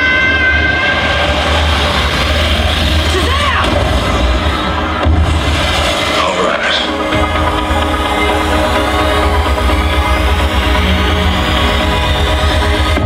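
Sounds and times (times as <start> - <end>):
film dialogue and shouts: 0.0 - 11.0
loud music with heavy bass: 0.0 - 13.0.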